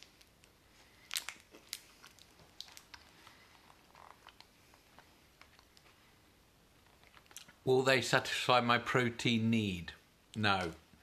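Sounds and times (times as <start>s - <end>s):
faint crunchy chewing: 0.0s - 6.1s, 6.8s - 7.6s.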